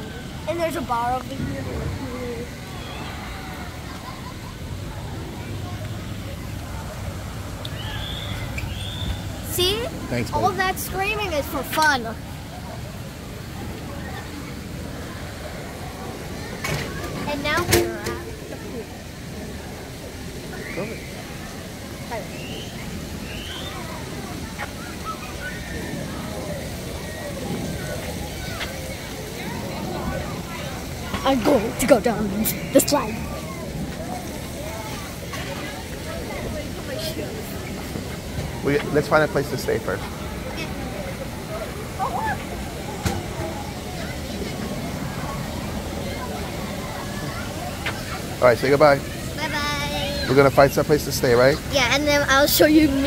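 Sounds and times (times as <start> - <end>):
distant chatter of people: 0.0 - 53.0
distant voices of swimmers: 0.0 - 53.0
steady hiss: 0.0 - 53.0.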